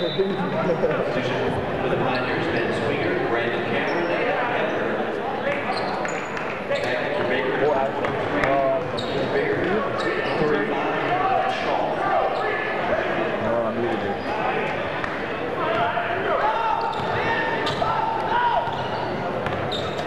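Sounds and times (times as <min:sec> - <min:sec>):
murmur of crowd chatter: 0:00.0 - 0:20.0
sneaker squeaks: 0:02.0 - 0:02.8, 0:03.8 - 0:04.4, 0:05.5 - 0:07.2, 0:08.8 - 0:10.5, 0:16.5 - 0:20.0.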